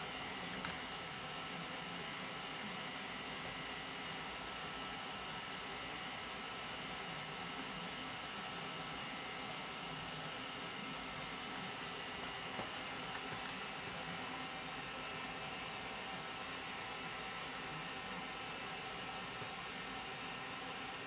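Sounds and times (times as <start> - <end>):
printer fans running: 0.0 - 21.0.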